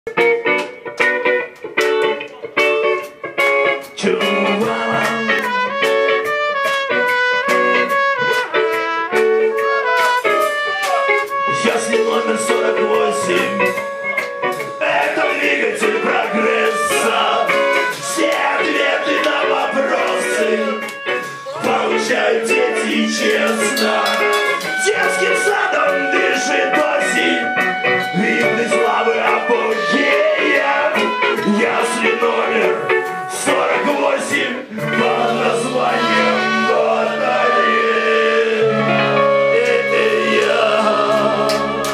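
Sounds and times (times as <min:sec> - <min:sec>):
live band playing: 0:00.1 - 0:41.9
steady drum beat: 0:01.8 - 0:36.2
trumpet melody: 0:04.2 - 0:41.9
horn section: 0:04.6 - 0:41.9.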